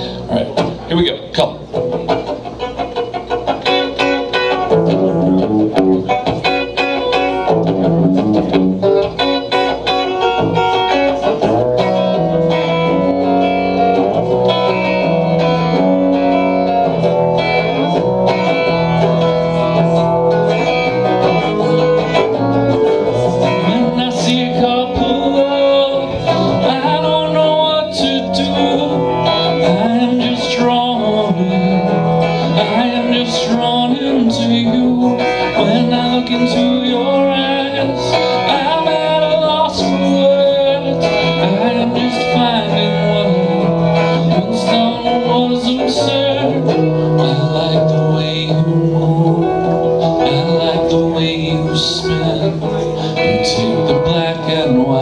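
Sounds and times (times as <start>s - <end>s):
electric guitar strumming chords: 0.0s - 55.0s.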